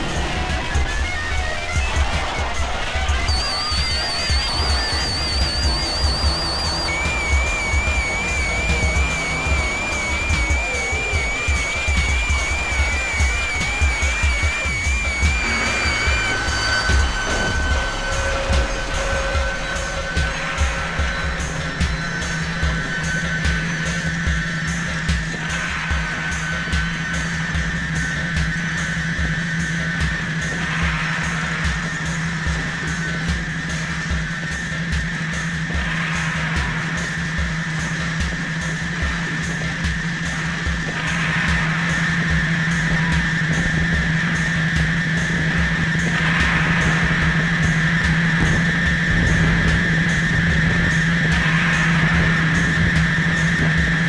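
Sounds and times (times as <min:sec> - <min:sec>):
high sustained tone: 0:00.0 - 0:28.2
stuttering low pulses: 0:00.0 - 0:34.4, 0:35.7 - 0:54.0
low synthesizer drone: 0:00.0 - 0:54.0.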